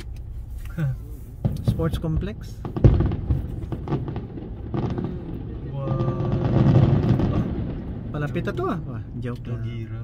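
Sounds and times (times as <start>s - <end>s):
low rumble: 0.3s - 10.0s
fireworks bangs: 1.3s - 9.2s.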